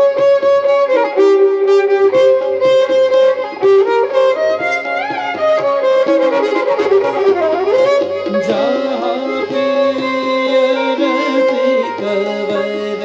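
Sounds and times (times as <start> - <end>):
light regular beat: 0.0 - 13.0
melody with pitch bends: 1.9 - 13.0.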